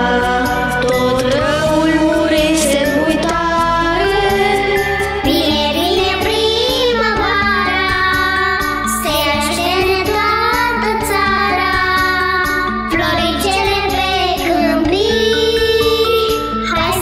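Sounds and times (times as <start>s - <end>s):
children's choir singing: 0.0s - 17.0s
instrumental backing with beat: 0.0s - 17.0s.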